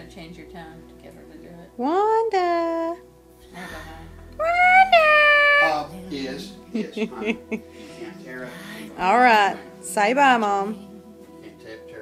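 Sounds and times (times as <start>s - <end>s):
dog yowling: 4.4s - 5.9s.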